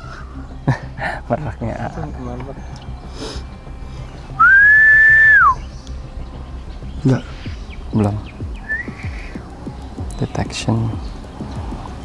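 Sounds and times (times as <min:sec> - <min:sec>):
long whistled note: 0:03.2 - 0:05.6.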